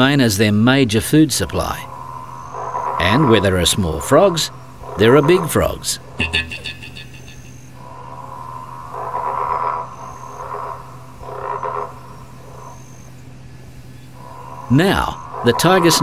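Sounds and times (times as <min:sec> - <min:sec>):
frog calling: 0:01.4 - 0:16.0.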